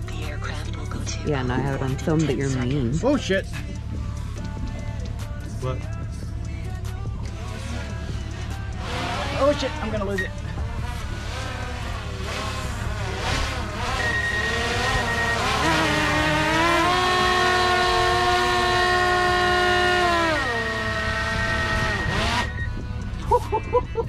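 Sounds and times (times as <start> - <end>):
drone propellers whining: 7.2 - 24.0.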